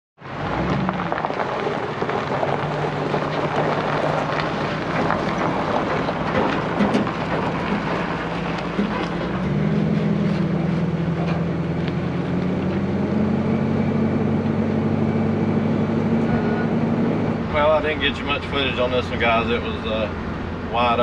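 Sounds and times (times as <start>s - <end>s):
tyre and trailer noise on gravel: 0.2s - 16.6s, 17.4s - 21.0s
truck engine pulling: 0.2s - 21.0s.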